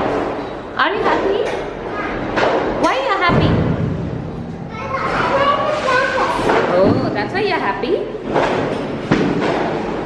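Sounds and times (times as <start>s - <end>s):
girl talking: 4.7s - 6.6s.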